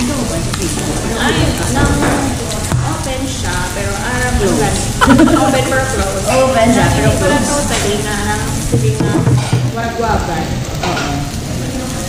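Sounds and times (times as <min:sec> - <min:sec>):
pork belly sizzling on grill: 0:00.0 - 0:12.0.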